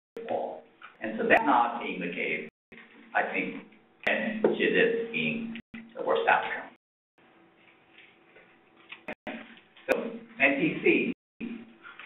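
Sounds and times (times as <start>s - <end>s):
person speaking: 0.2s - 6.8s, 9.1s - 11.2s.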